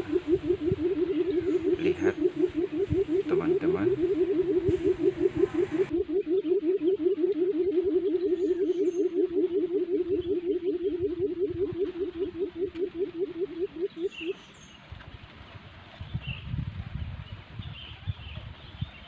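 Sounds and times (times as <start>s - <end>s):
decoy quail calling: 0.0s - 14.8s.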